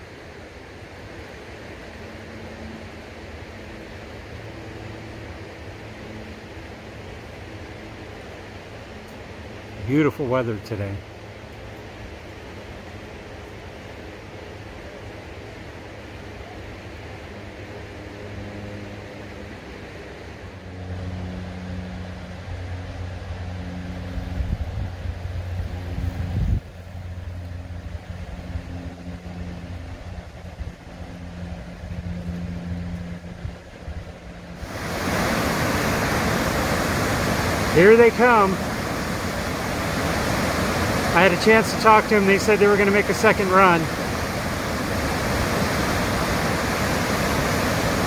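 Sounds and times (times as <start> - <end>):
river rapids rushing: 34.6 - 48.0.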